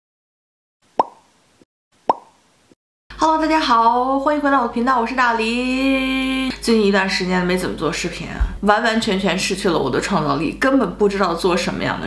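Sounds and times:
bright plop sound effect: 1.0s - 1.2s, 2.1s - 2.4s.

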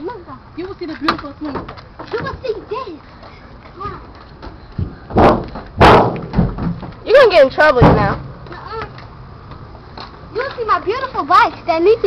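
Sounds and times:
feet thumping on car metal: 4.4s - 7.0s.

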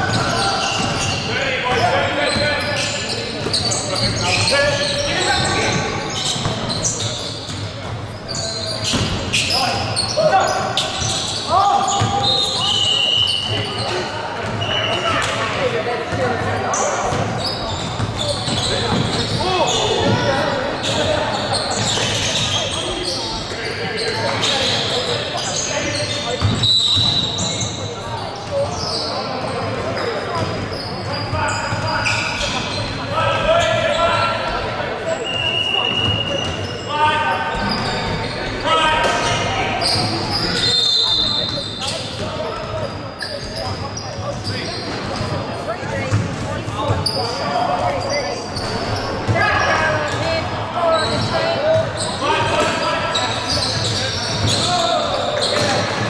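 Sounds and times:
basketball bouncing on wooden court: 46.0s - 47.1s.

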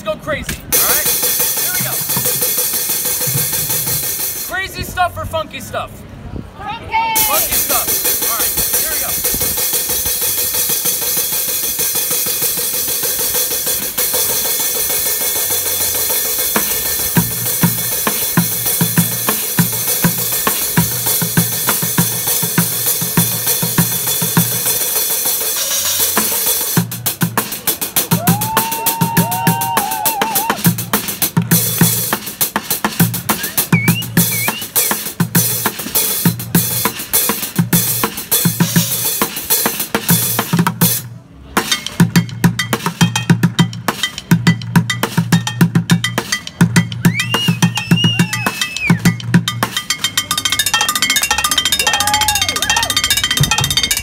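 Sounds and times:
bucket bass beat: 0.4s - 5.0s, 7.2s - 54.0s
bucket drumming: 0.5s - 4.5s, 7.2s - 54.0s.

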